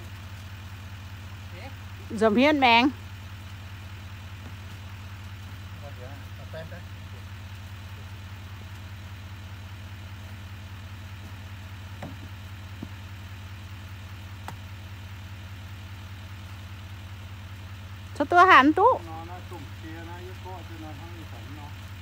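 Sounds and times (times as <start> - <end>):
pickup engine idling: 0.0 - 22.0.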